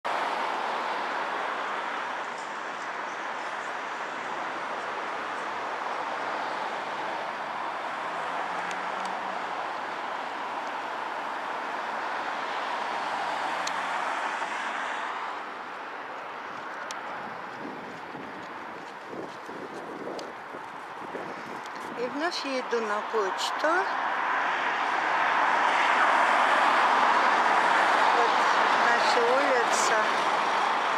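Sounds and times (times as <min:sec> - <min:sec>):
road traffic hum: 0:00.0 - 0:30.9.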